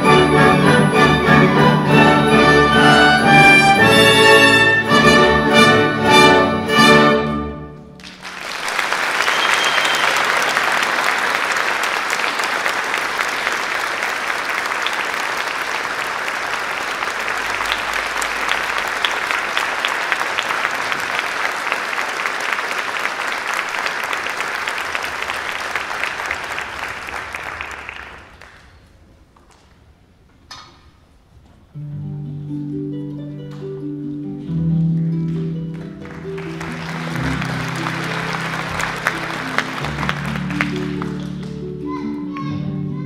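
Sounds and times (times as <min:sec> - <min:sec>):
audience applauding: 0:08.0 - 0:29.1, 0:35.6 - 0:41.9.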